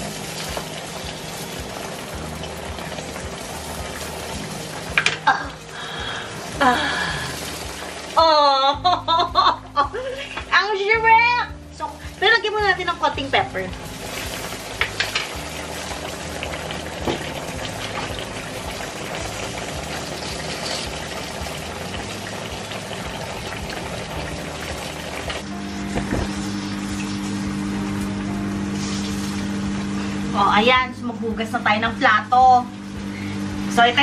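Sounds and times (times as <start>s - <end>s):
sauce sizzling in a frying pan: 0.0s - 10.9s, 11.7s - 30.8s
steady low drone: 21.0s - 30.6s.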